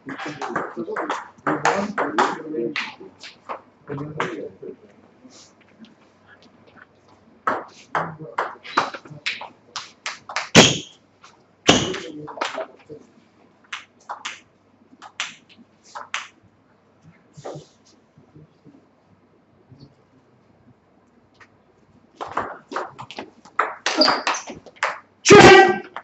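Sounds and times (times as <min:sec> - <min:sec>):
louder knocks: 0:10.5 - 0:10.9.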